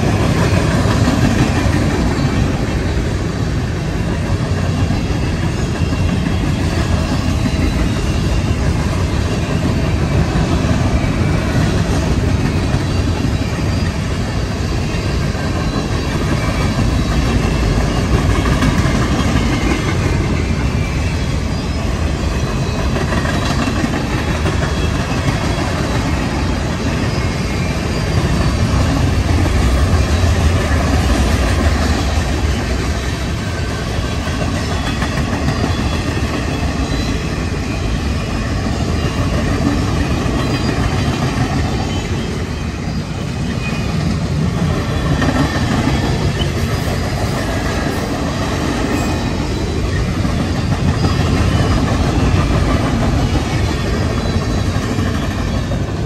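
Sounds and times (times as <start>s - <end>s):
freight train wheels rumbling: 0.0s - 56.0s.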